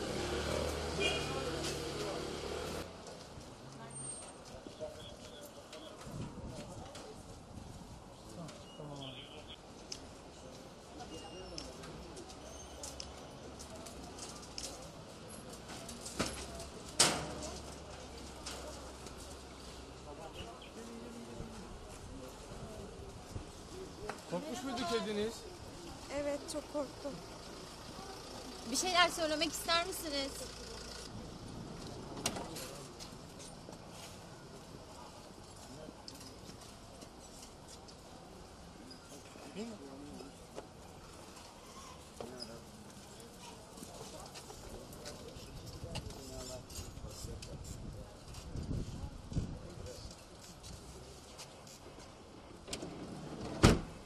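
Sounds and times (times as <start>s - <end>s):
faint street background: 0.0s - 54.0s.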